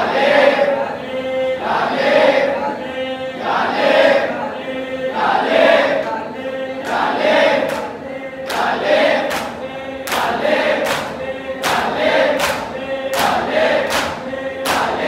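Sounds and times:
men chanting in unison: 0.0 - 15.0
hands slapping chests: 9.3 - 15.0.

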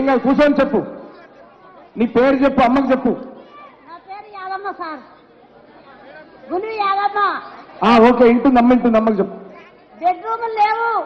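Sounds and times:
faint background chatter: 0.0 - 11.0.

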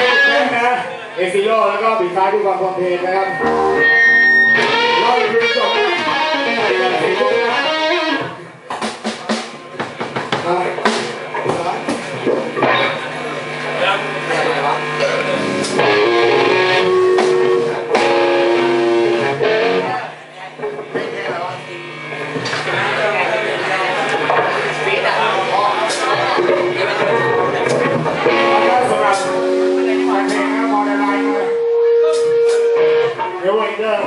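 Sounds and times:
electric guitar strumming: 0.0 - 0.6, 3.3 - 8.4, 12.5 - 13.2, 15.0 - 21.1, 25.3 - 33.5
drum kit: 3.4 - 13.0, 15.3 - 20.0, 25.8 - 33.3.

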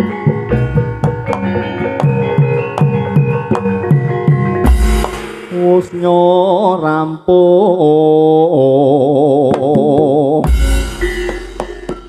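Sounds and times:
man singing through sound system: 5.4 - 10.5.

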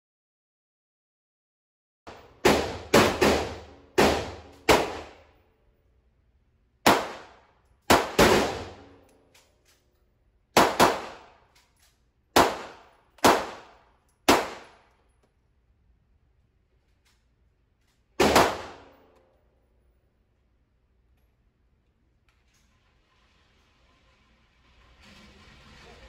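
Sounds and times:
pistol shots with echo: 2.1 - 5.2, 6.8 - 9.0, 10.5 - 11.5, 12.4 - 14.9, 18.2 - 19.1.

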